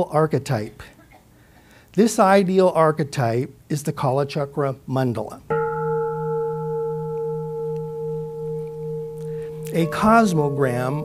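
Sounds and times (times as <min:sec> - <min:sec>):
ringing bell tone: 0:05.5 - 0:11.0.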